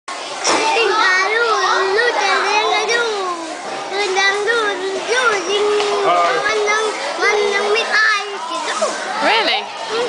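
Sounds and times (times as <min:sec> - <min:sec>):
children talking and calling out: 0:00.1 - 0:10.0.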